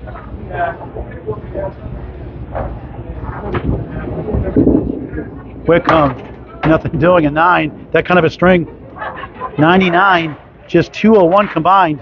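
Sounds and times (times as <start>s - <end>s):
bowling balls rolling on lanes: 0.0s - 10.6s.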